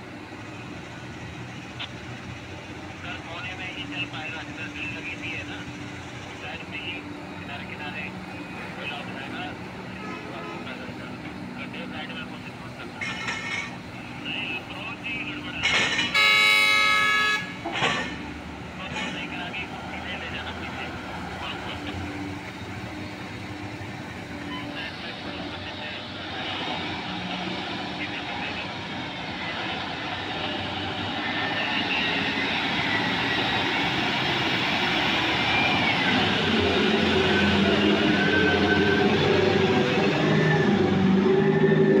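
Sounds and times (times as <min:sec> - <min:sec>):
truck horn blast: 0:16.0 - 0:18.0
diesel truck engine pulling away: 0:17.6 - 0:42.0.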